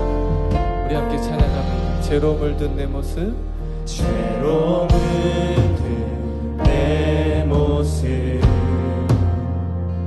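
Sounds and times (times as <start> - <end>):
worship band playing: 0.0 - 10.0
group of singers: 3.8 - 10.0.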